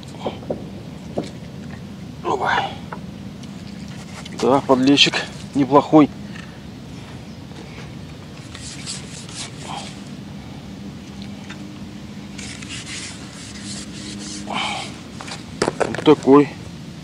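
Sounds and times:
steady low hum: 0.0 - 17.0
handling noise rubbing and rustling: 3.4 - 5.6, 7.6 - 10.1, 12.3 - 16.3.

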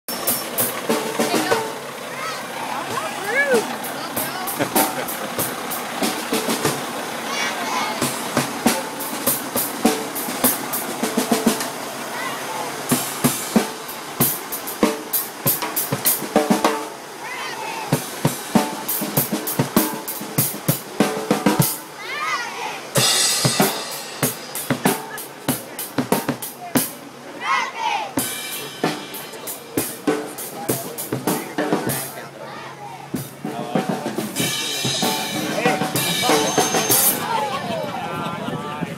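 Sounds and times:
drum kit playing: 0.1 - 17.2, 17.9 - 22.0, 22.9 - 27.2, 28.1 - 32.3, 33.0 - 37.5
group of voices chanting: 1.3 - 9.0, 17.2 - 18.1, 22.0 - 23.4, 27.2 - 28.4.

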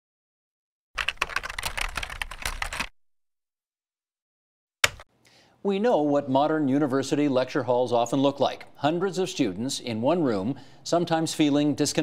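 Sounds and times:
computer keyboard typing: 1.0 - 2.9.

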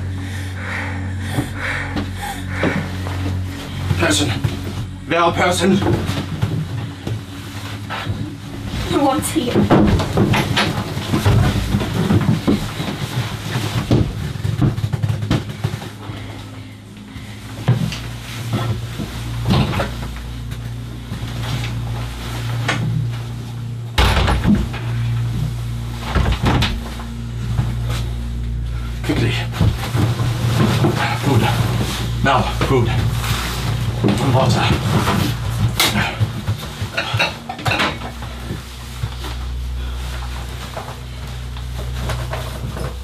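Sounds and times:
low steady hum: 0.0 - 43.0.

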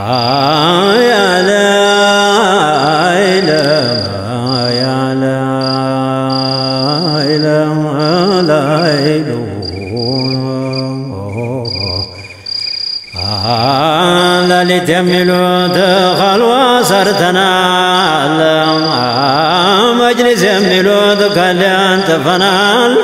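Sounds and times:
man chanting devotional song: 0.0 - 23.0.

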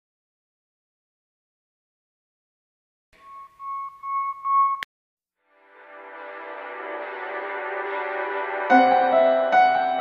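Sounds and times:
high electronic beep tone: 3.2 - 4.9.

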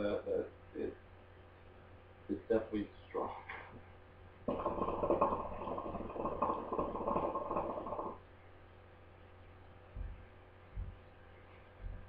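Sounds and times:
hookah water bubbling: 4.5 - 8.2.

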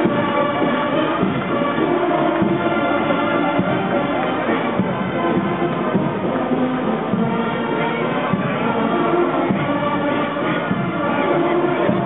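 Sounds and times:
male chorus singing: 0.0 - 12.0.

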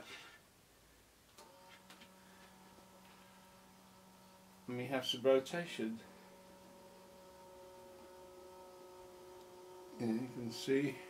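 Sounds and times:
geared motor humming: 1.4 - 11.0.

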